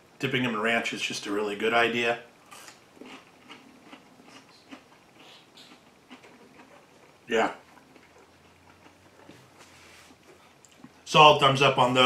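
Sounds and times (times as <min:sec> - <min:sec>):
person chewing crunchy food: 0:02.4 - 0:11.0.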